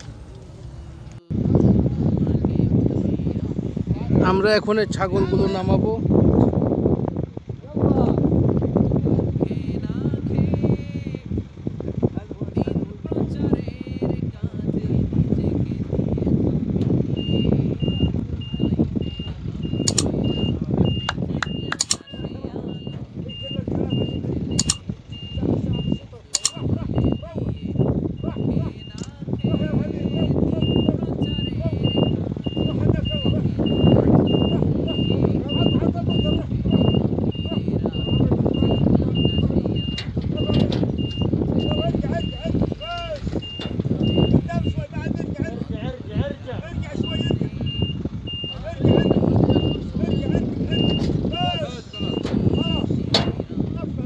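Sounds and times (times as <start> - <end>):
truck engine rumble: 0.0 - 54.0
truck reversing alarm beeping: 17.0 - 45.4, 46.6 - 53.7
sharp clicks: 19.8 - 20.2, 21.0 - 22.1, 24.5 - 24.9, 26.3 - 26.7.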